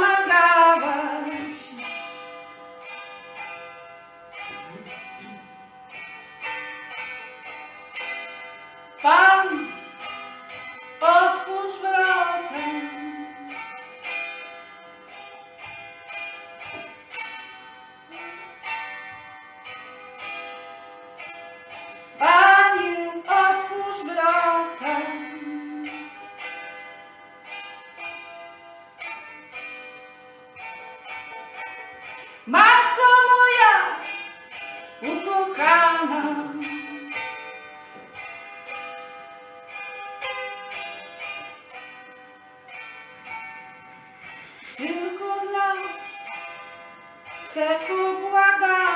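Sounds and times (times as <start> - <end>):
woman singing: 0.0 - 1.9, 9.0 - 9.8, 11.0 - 13.6, 22.2 - 26.1, 32.5 - 34.1, 35.0 - 37.2, 44.7 - 46.2, 47.5 - 48.9
hammered dulcimer playing: 0.0 - 48.9.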